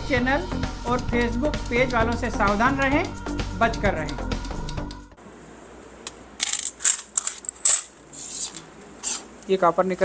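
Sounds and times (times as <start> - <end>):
metal coins clinking: 6.4 - 7.9.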